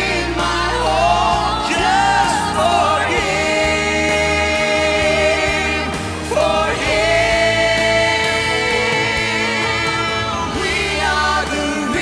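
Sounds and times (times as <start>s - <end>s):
band accompaniment: 0.0s - 12.0s.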